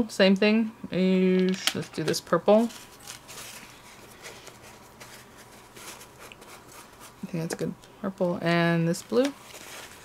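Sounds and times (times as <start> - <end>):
paper towel rustling and rubbing: 2.5 - 7.6, 9.1 - 10.0
soft scratches: 2.6 - 7.7.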